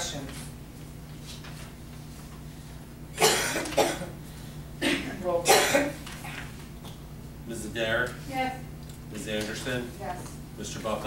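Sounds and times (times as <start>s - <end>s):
person coughing: 3.2s - 4.2s, 4.8s - 6.4s.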